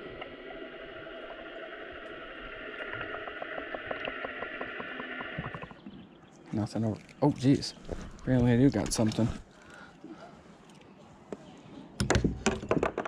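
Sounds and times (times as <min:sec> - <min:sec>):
muffled underwater hiss: 0:00.0 - 0:05.9
faint steady tones: 0:00.0 - 0:12.0
faint rapid clicks: 0:01.6 - 0:05.9.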